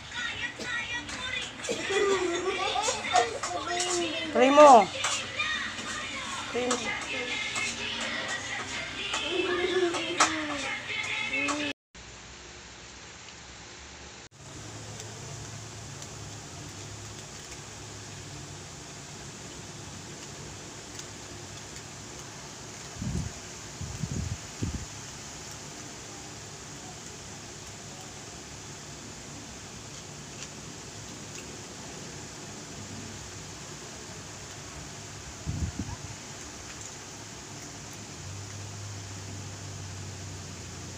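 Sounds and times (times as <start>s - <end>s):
fan-like room hiss: 0.0s - 40.9s.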